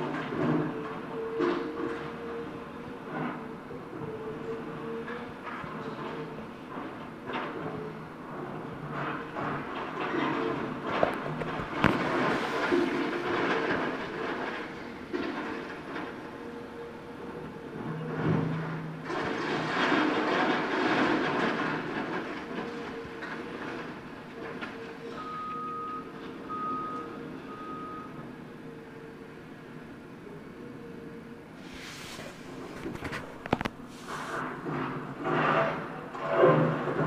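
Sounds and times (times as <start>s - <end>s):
excavator engine humming: 0.0s - 20.5s, 21.1s - 37.0s
rubble crumbling and falling: 10.8s - 16.1s
backup alarm beeping: 25.2s - 28.1s.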